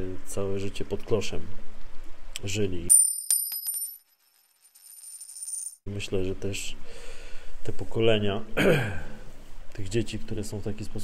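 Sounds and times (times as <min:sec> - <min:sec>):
metallic coin-like ring: 0:02.9 - 0:05.8.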